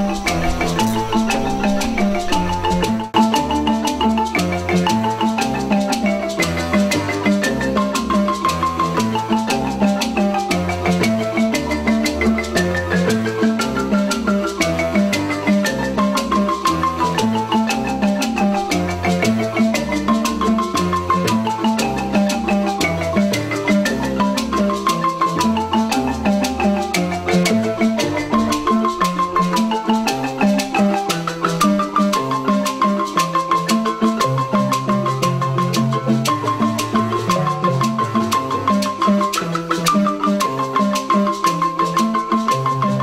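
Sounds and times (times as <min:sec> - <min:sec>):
marimba ensemble playing: 0:00.0 - 0:43.0.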